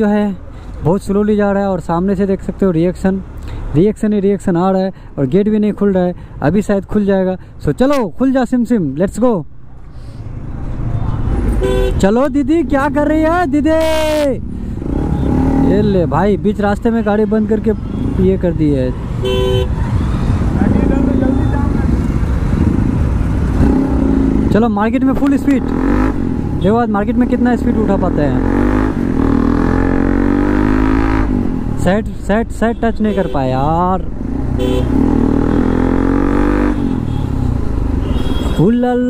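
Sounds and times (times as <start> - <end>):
motorcycle engines rumbling: 0.0 - 39.0
vehicle horn toot: 11.6 - 12.0, 19.2 - 19.8, 32.7 - 33.6, 34.6 - 35.0, 38.0 - 38.7
motorcycle engine revving: 14.5 - 16.4, 19.6 - 31.9, 34.1 - 38.4.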